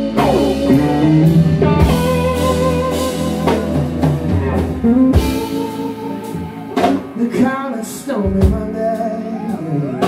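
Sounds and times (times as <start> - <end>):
electric guitar lead lines: 0.0 - 8.5
bass: 0.0 - 10.0
drum kit: 0.0 - 10.0.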